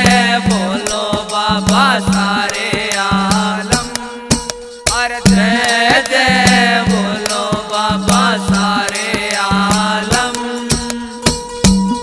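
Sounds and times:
person singing devotional song: 0.0 - 11.6
hand drum strikes: 0.0 - 12.0
steady held drone: 0.0 - 12.0.

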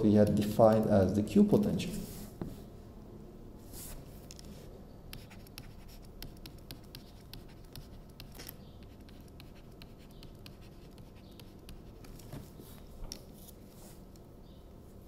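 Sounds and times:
stylus tapping and scratching: 0.0 - 1.0, 5.1 - 12.5.

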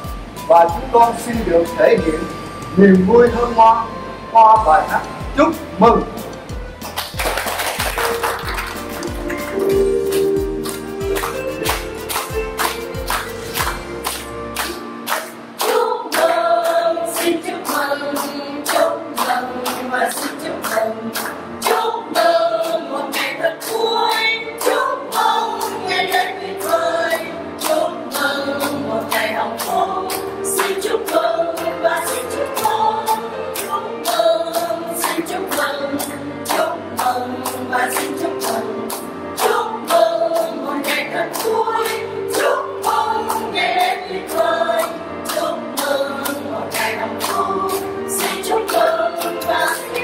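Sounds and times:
hands clapping in time: 6.8 - 26.9
group singing together: 7.8 - 50.0.

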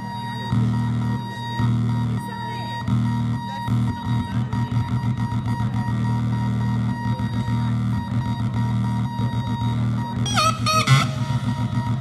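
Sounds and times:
electronic drone music: 0.0 - 12.0.

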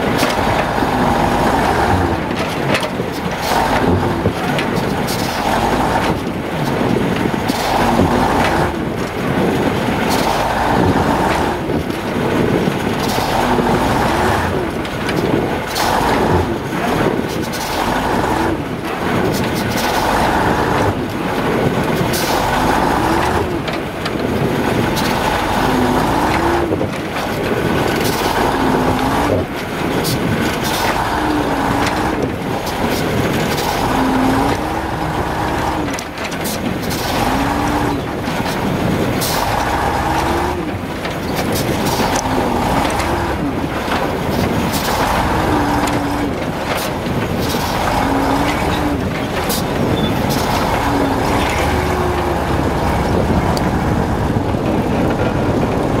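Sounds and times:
diesel truck engine labouring: 0.0 - 56.0.

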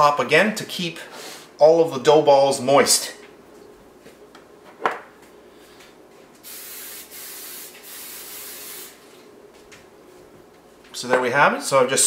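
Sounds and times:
sprayer hissing: 6.4 - 9.1.

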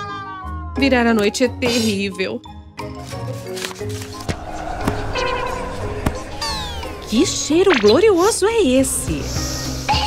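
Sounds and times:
falling whistle glide: 4.1 - 8.4.

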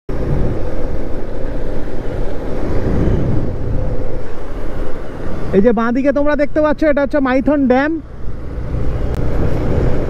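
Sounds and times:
road noise: 0.1 - 10.0
wind buffeting microphone: 0.1 - 10.0.

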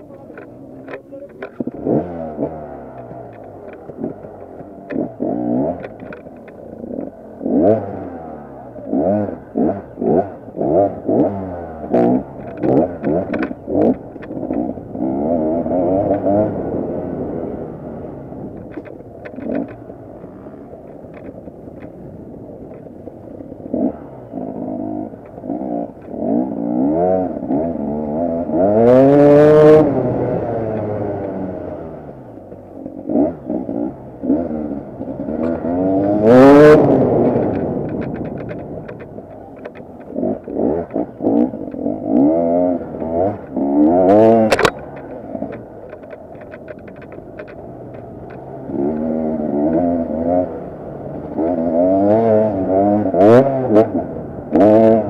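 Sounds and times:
motorbike engine revving: 0.0 - 55.0.

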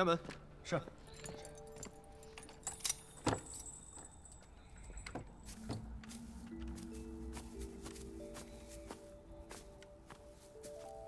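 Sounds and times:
quiet background music: 0.0 - 11.0
keys jangling: 1.0 - 6.2.

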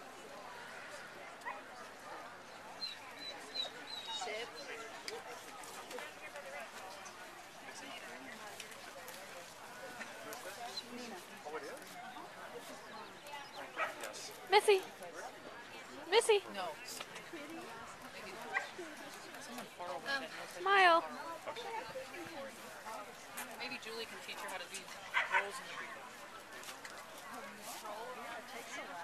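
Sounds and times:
background talk: 0.0 - 29.0
dog barking: 13.8 - 14.0, 25.1 - 25.5.

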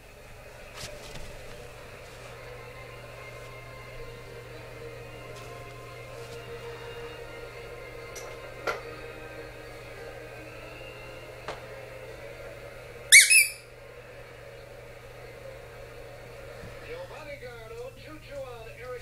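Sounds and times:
squeaky dog toy squeaks: 13.1 - 13.6.

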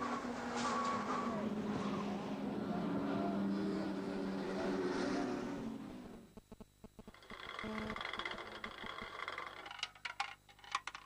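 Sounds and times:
racing car engines at speed: 0.0 - 6.3.

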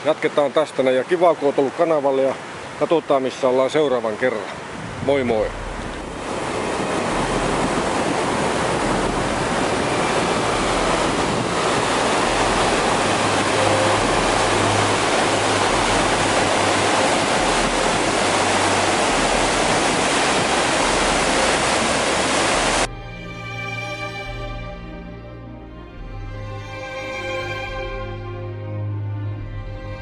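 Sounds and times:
river rushing over rocks: 0.0 - 22.9.

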